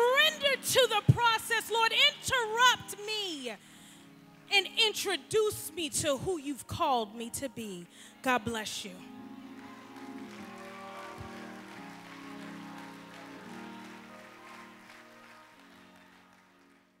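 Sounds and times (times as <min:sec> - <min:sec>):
soft keyboard chords: 0:00.0 - 0:17.0.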